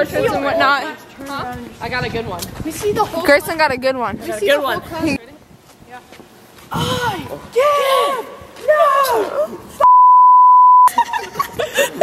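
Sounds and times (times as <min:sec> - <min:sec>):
high-pitched censor beep: 0:09.8 - 0:10.9.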